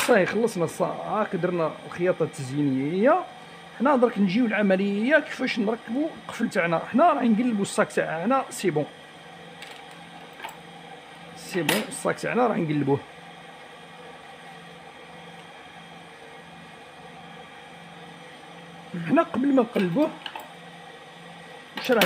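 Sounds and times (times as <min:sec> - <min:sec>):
person speaking: 0:00.0 - 0:09.0, 0:11.4 - 0:13.1, 0:18.9 - 0:20.3.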